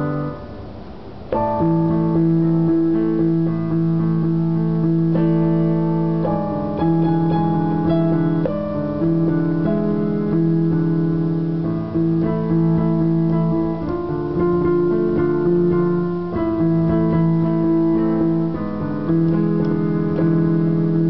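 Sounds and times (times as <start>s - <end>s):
electronic keyboard chords: 0.0s - 21.0s.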